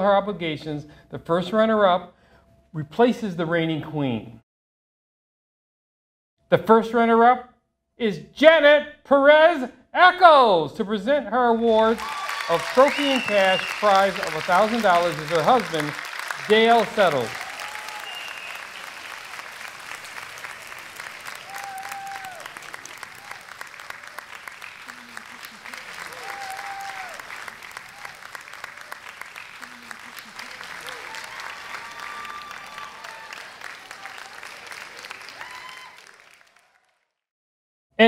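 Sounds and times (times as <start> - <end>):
audience applause: 11.7 - 37.2.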